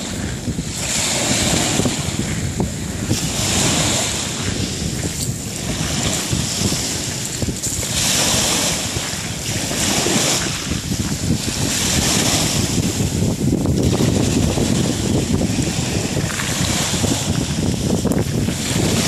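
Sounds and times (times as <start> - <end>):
waves breaking on shore: 0.0 - 19.0
wind buffeting microphone: 0.0 - 19.0.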